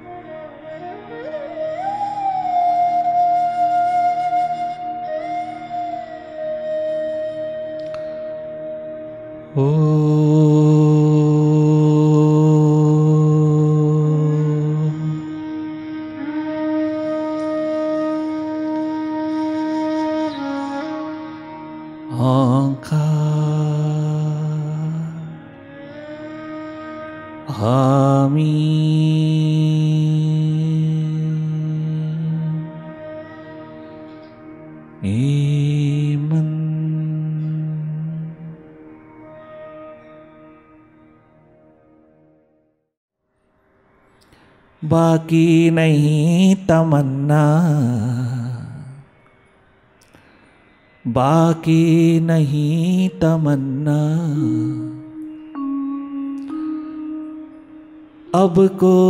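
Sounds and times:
soft meditative music: 0.0 - 59.0
man chanting: 9.6 - 15.6, 22.1 - 25.4, 27.5 - 33.2, 35.0 - 38.6, 44.8 - 49.0, 51.1 - 57.4, 58.3 - 59.0.

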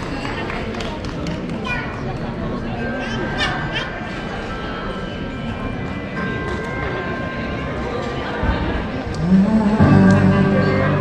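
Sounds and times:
low street hubbub: 0.0 - 11.0
indistinct voices talking: 8.8 - 11.0.

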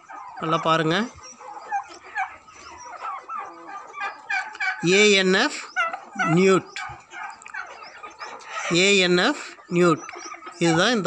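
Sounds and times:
turkeys yelping: 0.0 - 11.0.

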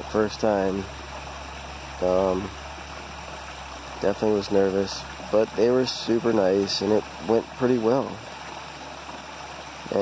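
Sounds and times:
stream and waterfall rushing: 0.0 - 10.0.

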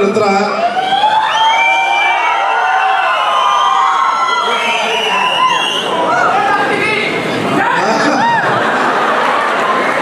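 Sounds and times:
audience cheering and whooping: 0.6 - 6.8, 7.5 - 10.0.

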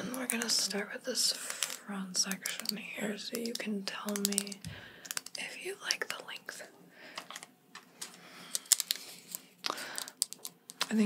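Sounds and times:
scissors clicking and clacking: 3.4 - 5.4.

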